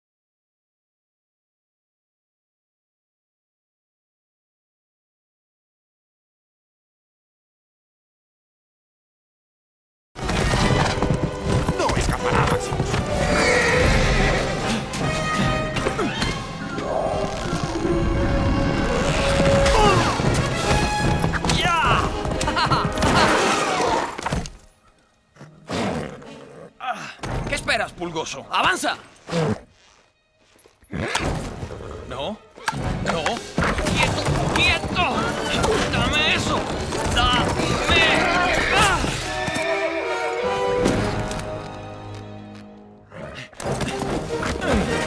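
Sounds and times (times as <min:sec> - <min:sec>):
orchestral music: 0:10.2 - 0:24.2, 0:32.2 - 0:45.0
horse whinnying: 0:13.0 - 0:22.2, 0:29.2 - 0:30.1, 0:30.8 - 0:32.3, 0:36.9 - 0:40.2.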